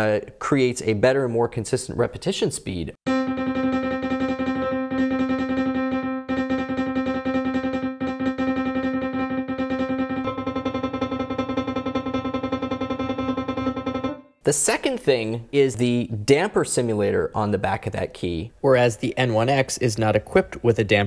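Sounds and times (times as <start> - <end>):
lower fuller piano tone: 3.1 - 14.4
piano note repeated in tremolo: 3.1 - 14.4.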